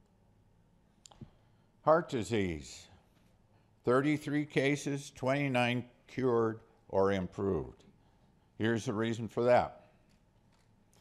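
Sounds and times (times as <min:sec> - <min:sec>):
man speaking: 0:01.8 - 0:03.0, 0:03.8 - 0:07.9, 0:08.6 - 0:09.9.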